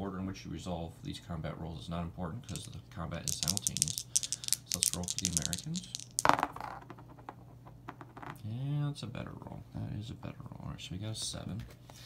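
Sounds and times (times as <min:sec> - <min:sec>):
dice clicking on table: 0:02.5 - 0:08.4.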